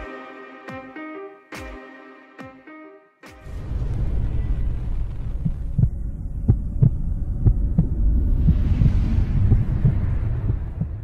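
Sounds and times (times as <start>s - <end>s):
deep rumbling drone: 3.5s - 11.0s.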